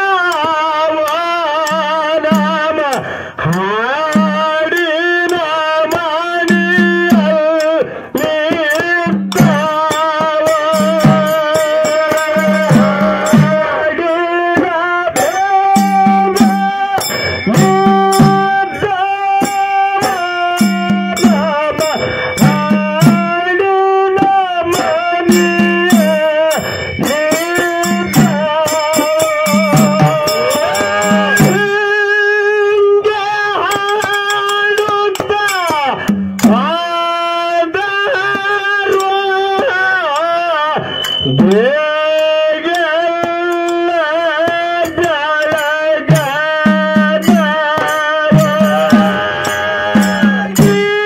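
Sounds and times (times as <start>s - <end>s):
man singing folk song: 0.0s - 40.8s, 41.4s - 51.0s
dhol drum beats: 0.0s - 51.0s
held melodic note: 9.0s - 14.0s, 15.2s - 23.5s, 24.8s - 32.4s, 44.8s - 51.0s.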